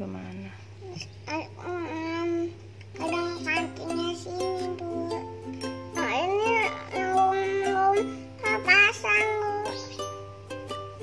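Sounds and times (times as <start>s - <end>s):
steady low hum: 0.0s - 11.0s
light children's tune: 0.8s - 11.0s.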